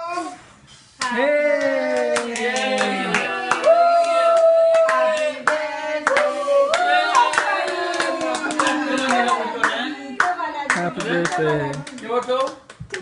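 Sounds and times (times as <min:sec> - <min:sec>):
people singing together: 0:01.0 - 0:11.7
hands clapping in time: 0:01.0 - 0:13.0.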